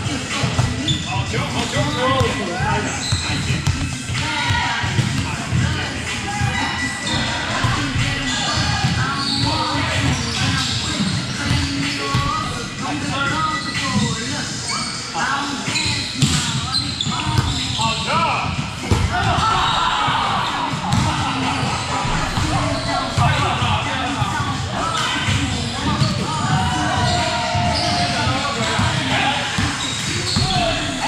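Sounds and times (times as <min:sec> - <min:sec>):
people's voices: 0:00.0 - 0:31.0.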